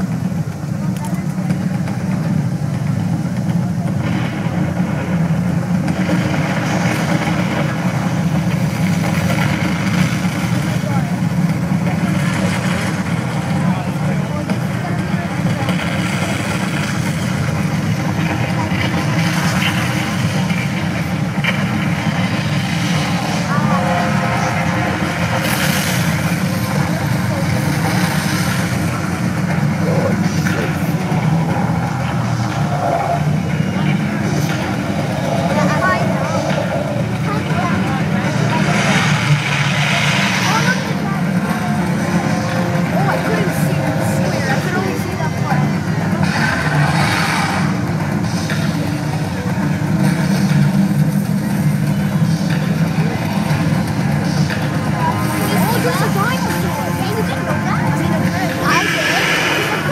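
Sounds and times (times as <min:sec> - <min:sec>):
indistinct voices: 0:00.0 - 0:59.9
loud low rumble: 0:00.0 - 0:59.9.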